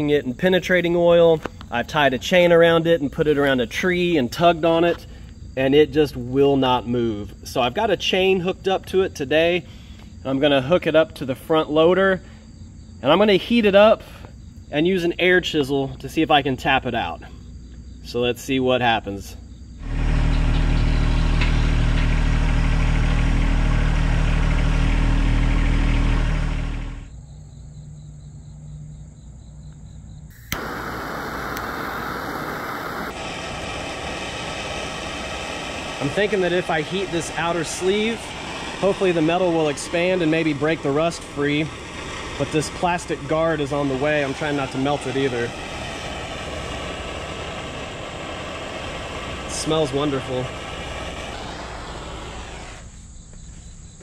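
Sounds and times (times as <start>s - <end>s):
propane torch flame roaring: 19.8s - 27.1s, 30.3s - 53.0s
tractor diesel engine running: 19.8s - 27.2s, 30.4s - 52.9s
steady rushing noise: 30.4s - 52.9s.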